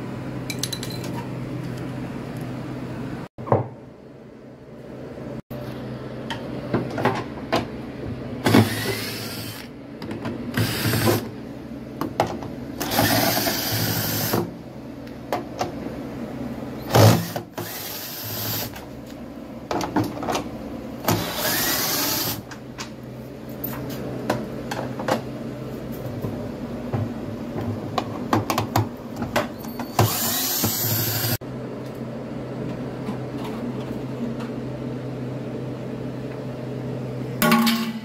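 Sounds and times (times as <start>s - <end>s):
cordless drill running: 8.6s - 9.7s, 17.2s - 18.7s, 21.2s - 22.4s, 30.0s - 31.4s.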